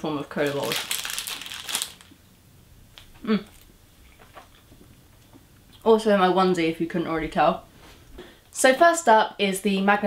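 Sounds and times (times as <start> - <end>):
sweet wrapper crinkling: 0.0 - 2.2.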